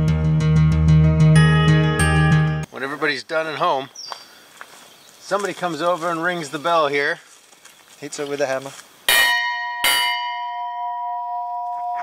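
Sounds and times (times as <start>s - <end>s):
hammer striking metal bell: 9.1s - 12.0s.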